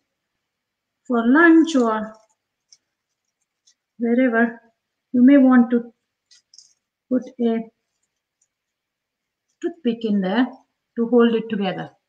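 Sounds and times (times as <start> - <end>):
woman speaking: 1.1 - 2.3, 4.0 - 5.9, 7.1 - 7.8, 9.6 - 12.0.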